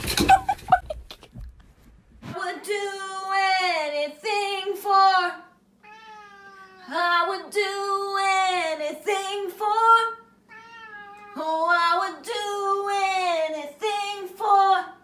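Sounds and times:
cat meowing loudly: 5.8s - 6.9s, 10.5s - 11.4s.

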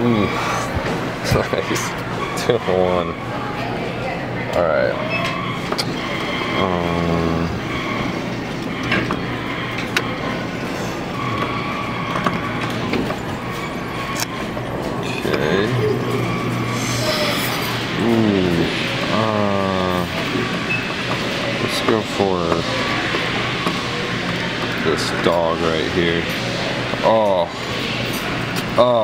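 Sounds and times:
indistinct voices: 0.0s - 29.0s
steady machine hum: 0.0s - 29.0s.

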